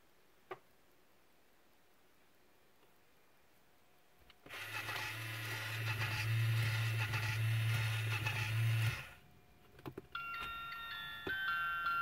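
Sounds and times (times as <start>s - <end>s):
toy wiper motor humming and rattling: 4.5s - 9.2s.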